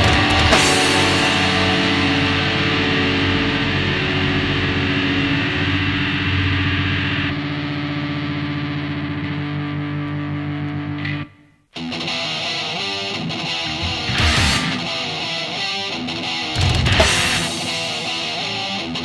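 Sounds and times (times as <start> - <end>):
heavy metal band: 0.0 - 11.2, 11.8 - 19.0
distorted guitar chords: 0.0 - 19.0.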